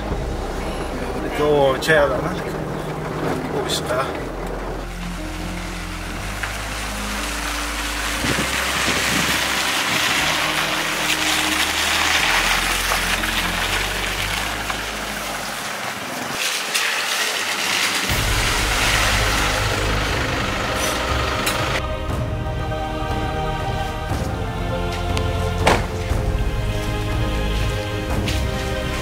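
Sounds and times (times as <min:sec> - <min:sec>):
pickup truck engine: 0:00.0 - 0:29.0
tyres on dirt road: 0:00.0 - 0:29.0.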